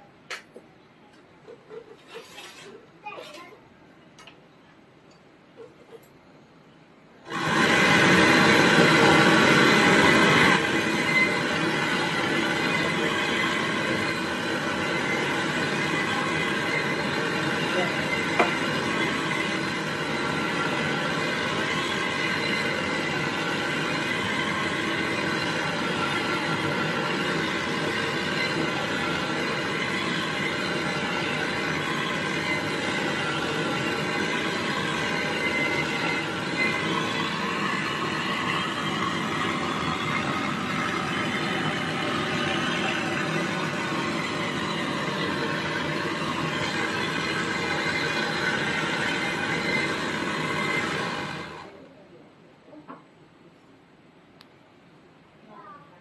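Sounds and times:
torch burning with steady hiss: 7.2s - 52.1s.

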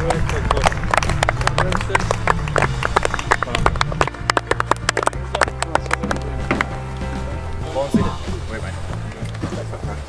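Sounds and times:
people clapping: 0.0s - 7.3s
background music with low bass: 0.0s - 10.0s.

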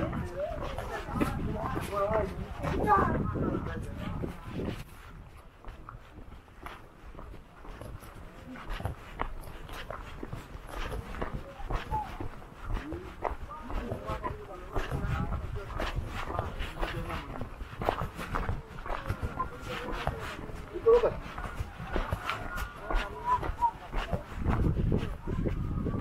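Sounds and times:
people talking: 0.0s - 6.0s, 7.2s - 26.0s
footsteps on dirt road: 0.0s - 26.0s.

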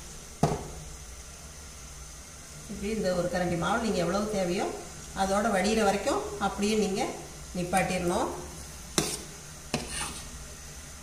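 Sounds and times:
ladle scooping batter: 7.8s - 10.4s.

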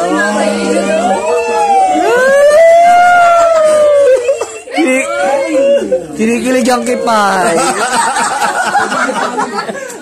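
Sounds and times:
person wailing like a siren: 0.2s - 4.2s.

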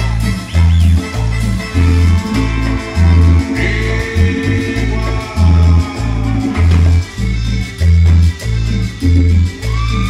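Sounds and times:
live latin band through pa: 0.0s - 10.0s
pulsing bass line: 0.0s - 10.0s.

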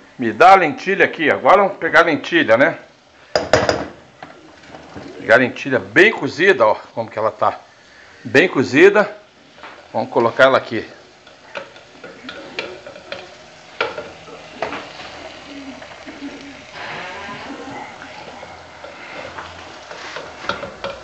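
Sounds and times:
faint food sizzling: 0.0s - 21.0s
spoon knocking against pots: 3.3s - 4.4s, 11.2s - 15.2s, 20.2s - 21.0s.

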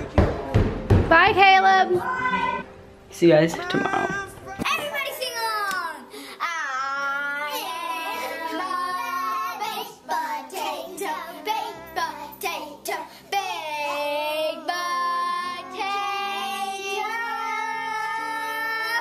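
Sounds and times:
child singing: 3.7s - 19.0s
backing music with held notes: 6.0s - 19.0s.

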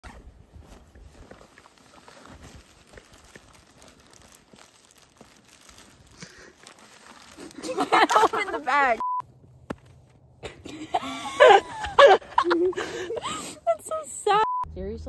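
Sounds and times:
rustling in a backpack: 0.0s - 9.0s
woman laughing: 7.4s - 9.0s, 10.4s - 14.5s.

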